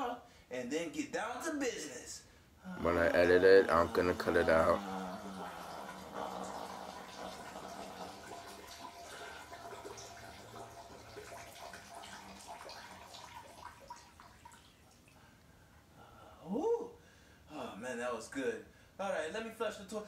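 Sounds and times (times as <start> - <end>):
urine splashing into toilet water: 2.8 - 15.3.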